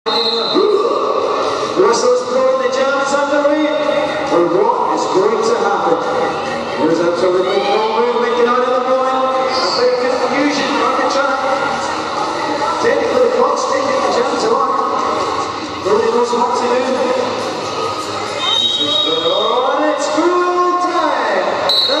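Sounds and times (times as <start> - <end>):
shrill whistle blast: 0.0 - 0.8, 18.4 - 19.7, 21.7 - 22.0
voices in a sports hall: 0.0 - 22.0
commentator speaking: 0.1 - 11.8, 12.6 - 17.4, 18.8 - 22.0
steady music: 0.1 - 22.0.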